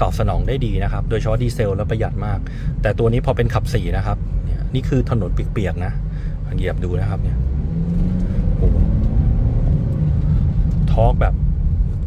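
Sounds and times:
diesel engine rumble under acceleration: 0.0 - 12.0.

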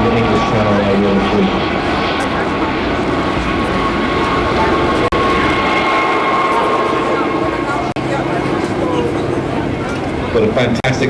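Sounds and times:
helicopters and aircraft flying over: 0.0 - 11.0
thin steady whine: 0.0 - 11.0.

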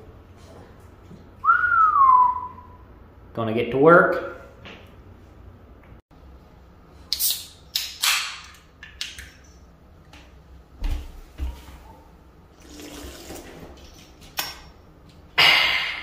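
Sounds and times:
soda can opening crack: 7.1 - 9.3.

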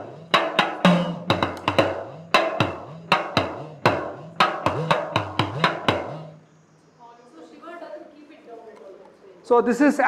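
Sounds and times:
hourglass drum struck with stick: 0.0 - 6.4.

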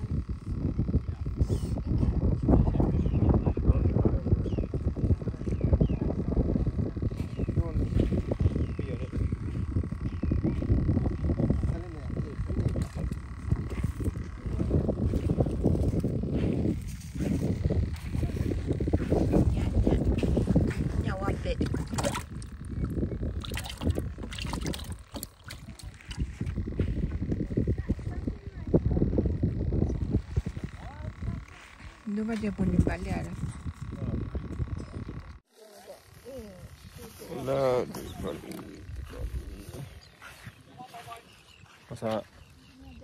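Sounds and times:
faint talking: 25.6 - 43.0.

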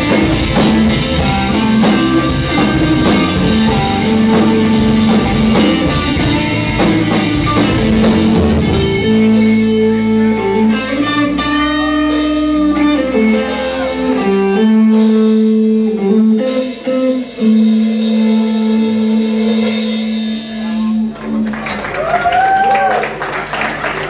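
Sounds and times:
electric guitars sustained notes: 0.0 - 22.0
bass guitar: 0.0 - 24.0.

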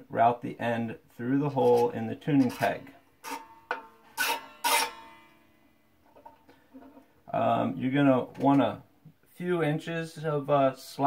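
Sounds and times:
string scraping through peg: 1.4 - 5.5.

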